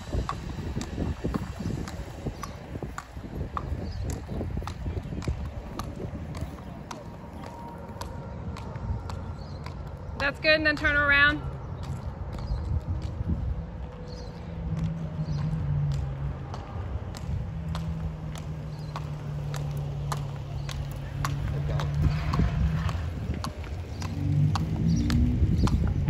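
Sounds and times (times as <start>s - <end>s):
hooves clip-clopping on asphalt: 0.0s - 26.0s.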